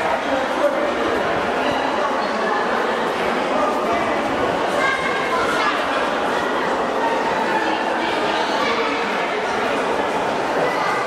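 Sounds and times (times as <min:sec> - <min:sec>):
echoing chatter of voices: 0:00.0 - 0:11.0.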